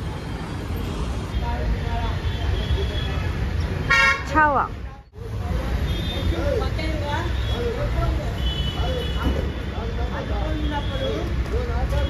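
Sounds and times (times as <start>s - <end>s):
city traffic rumble: 0.0s - 12.0s.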